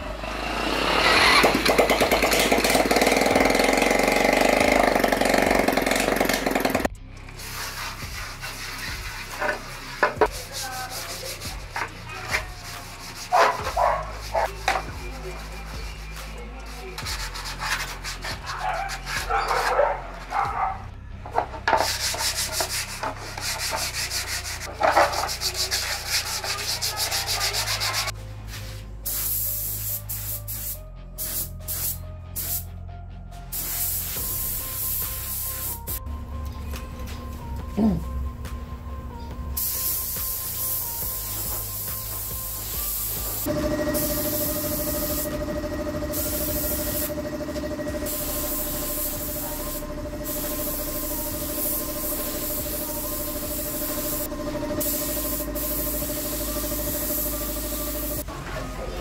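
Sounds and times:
scooter engine running: 0.0s - 6.9s, 43.4s - 58.3s
hands sanding plastic panel: 7.6s - 19.3s.

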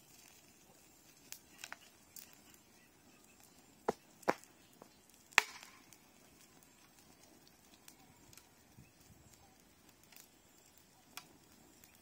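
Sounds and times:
sharp cracks: 5.2s - 6.0s.

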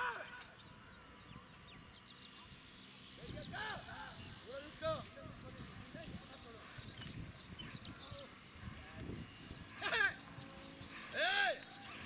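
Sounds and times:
handlers shouting calls: 0.0s - 1.2s, 3.2s - 12.0s.

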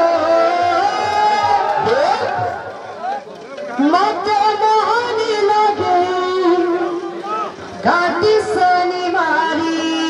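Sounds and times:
woman chanting through a microphone: 0.0s - 2.6s, 3.8s - 7.2s, 7.8s - 10.0s.

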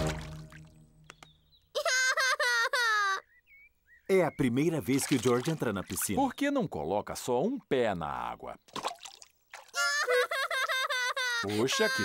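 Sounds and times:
child whimpering: 9.8s - 10.5s.

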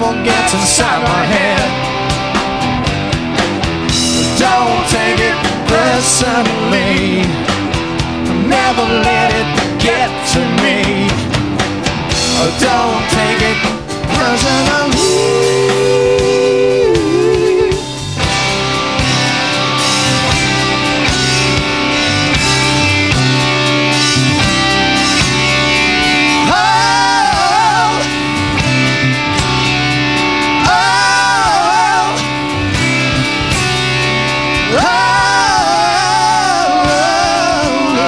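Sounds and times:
bending guitar lead line: 0.0s - 38.0s
live rock band: 0.0s - 38.0s.

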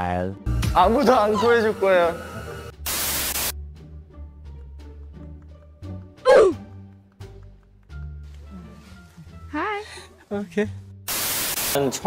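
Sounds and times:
loud static hiss: 1.7s - 3.6s, 11.1s - 12.0s.

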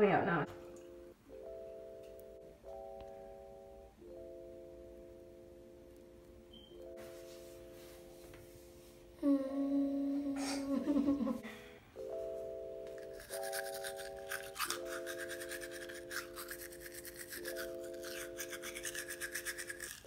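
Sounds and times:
slow held chords music: 0.2s - 19.4s
toothbrush scrubbing teeth: 13.0s - 20.0s.

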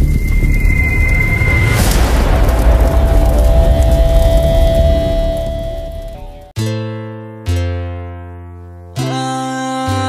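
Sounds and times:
deep rumble: 0.0s - 6.5s
held tone: 0.0s - 6.5s.

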